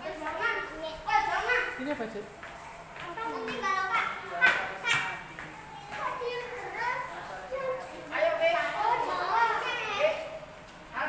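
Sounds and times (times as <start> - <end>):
children talking and calling out: 0.0 - 10.6.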